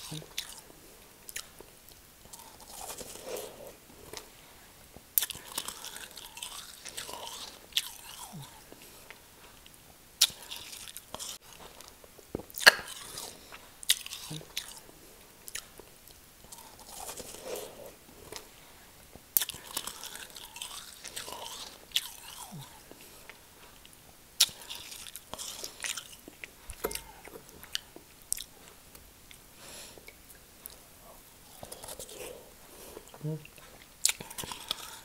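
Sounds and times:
wet chewing: 0.0s - 4.3s, 5.2s - 18.6s, 19.4s - 35.0s.

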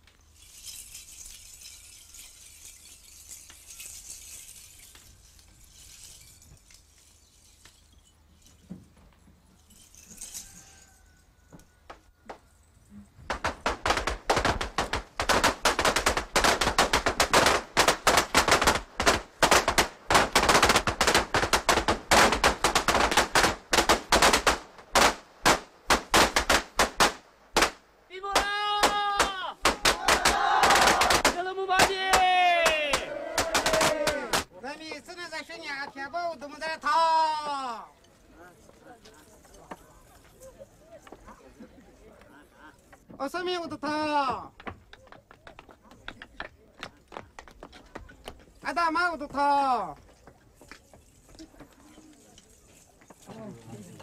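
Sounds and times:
firecrackers cracking: 13.2s - 34.6s.

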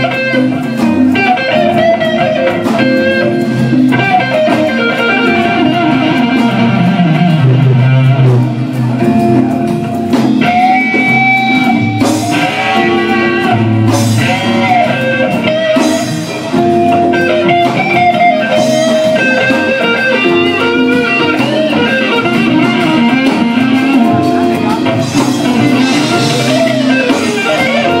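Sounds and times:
bass: 0.0s - 28.0s
drums: 0.0s - 28.0s
electric guitar bending notes: 0.0s - 28.0s.

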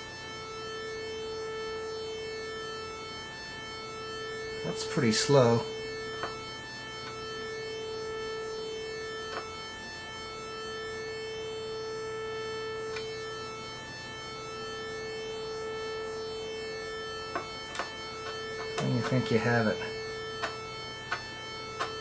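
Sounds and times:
synthesizer sawtooth note: 3.6s - 22.0s.

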